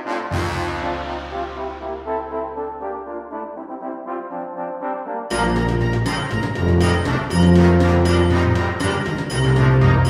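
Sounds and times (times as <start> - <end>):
brass band music: 0.0 - 10.0.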